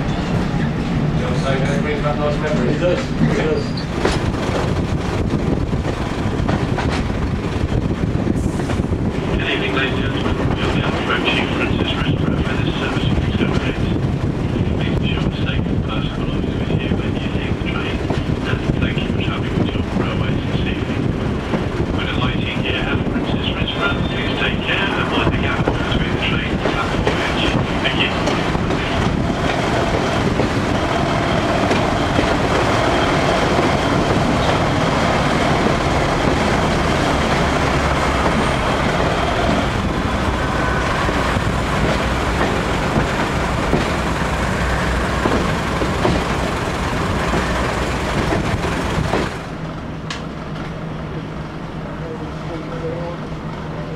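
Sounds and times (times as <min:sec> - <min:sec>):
train wheels on rails: 0:00.0 - 0:51.4
rushing air: 0:03.8 - 0:13.3, 0:24.1 - 0:50.0
diesel engine: 0:26.3 - 0:53.9.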